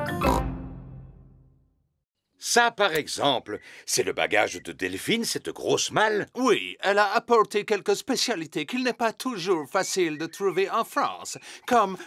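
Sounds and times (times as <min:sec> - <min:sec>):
cartoon theme music: 0:00.0 - 0:01.6.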